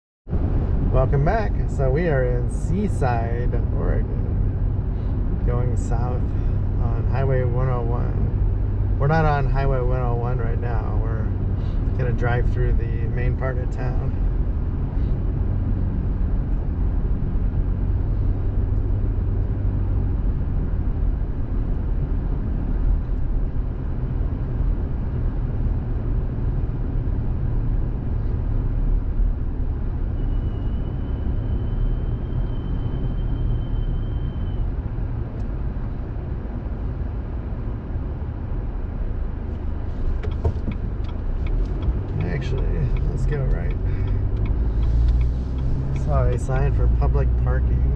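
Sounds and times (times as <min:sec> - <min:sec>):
car road and engine rumble: 0:00.3 - 0:47.9.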